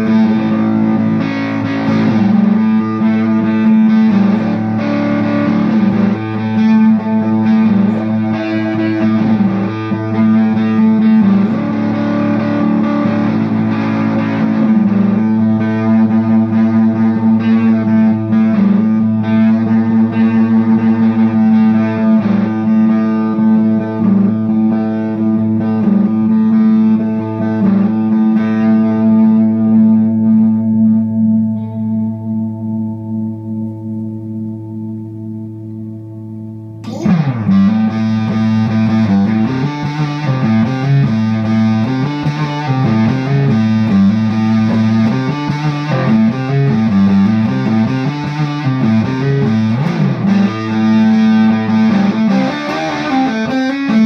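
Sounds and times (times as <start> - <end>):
fuzz-distorted electric guitar: 0.0 - 54.0
steady low guitar note: 0.0 - 54.0.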